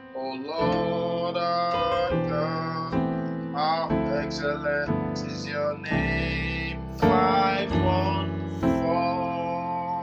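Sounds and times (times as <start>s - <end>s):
electronic keyboard chords: 0.0s - 10.0s.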